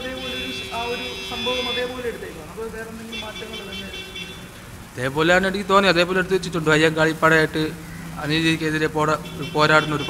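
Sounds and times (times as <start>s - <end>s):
man speaking into a microphone: 0.0s - 4.3s, 5.0s - 10.0s.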